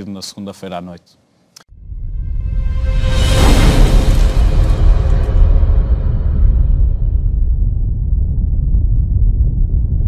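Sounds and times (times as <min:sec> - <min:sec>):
deep cinematic rumble: 0:01.8 - 0:10.0.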